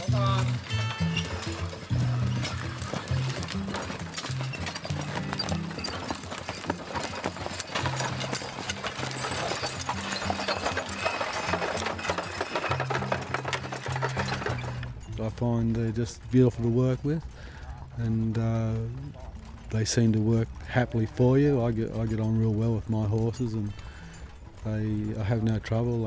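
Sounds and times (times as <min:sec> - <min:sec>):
background music: 0:00.0 - 0:26.0
horse hooves clip-clopping: 0:00.0 - 0:26.0.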